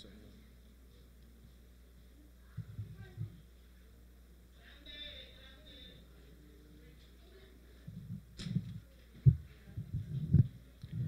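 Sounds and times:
microphone handling thumps: 0:07.9 - 0:11.0.

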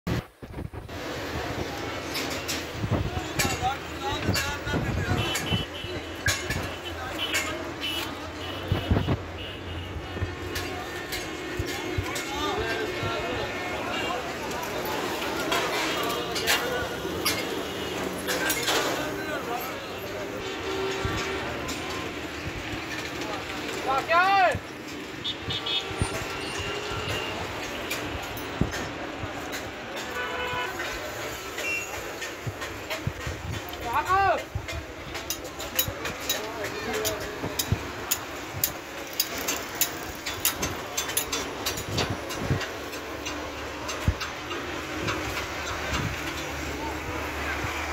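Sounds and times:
road traffic hum: 0:00.1 - 0:47.9
voices talking: 0:01.2 - 0:47.9.

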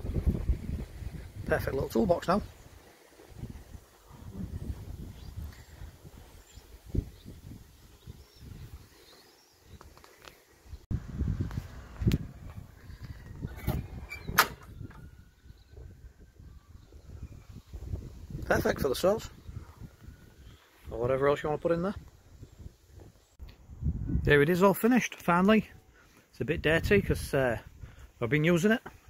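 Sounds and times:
wind on microphone: 0:00.0 - 0:09.0, 0:10.9 - 0:21.1, 0:21.9 - 0:24.4.

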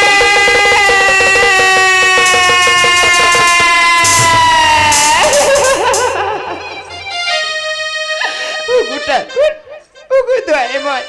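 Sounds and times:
quick percussion ticks: 0:00.9 - 0:06.7
person singing a long note: 0:00.9 - 0:07.0.

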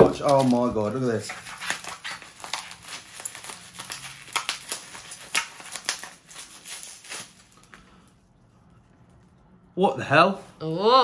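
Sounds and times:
plastic packaging crinkling: 0:00.0 - 0:08.2.

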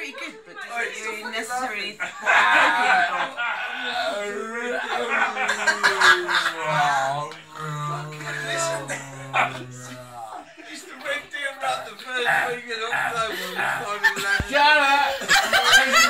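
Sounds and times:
laughter: 0:02.0 - 0:06.9, 0:13.2 - 0:16.0.

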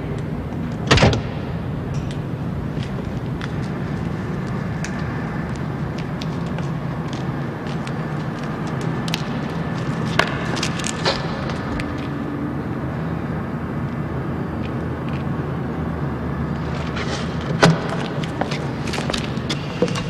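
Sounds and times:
low mechanical hum: 0:00.0 - 0:20.0.

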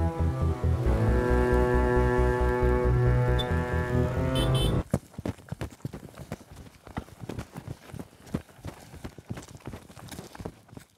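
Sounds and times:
quick footsteps on pavement: 0:04.8 - 0:10.9.

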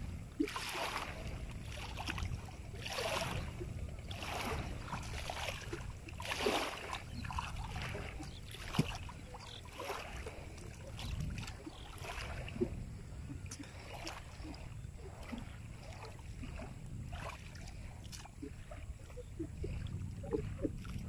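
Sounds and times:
low steady rumble: 0:00.0 - 0:21.0
river water splashing: 0:00.0 - 0:21.0.

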